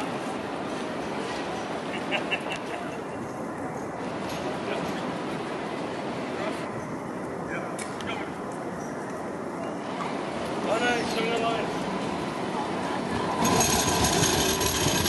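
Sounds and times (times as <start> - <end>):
tram rolling on tracks: 0.0 - 15.0
people talking: 10.6 - 11.8.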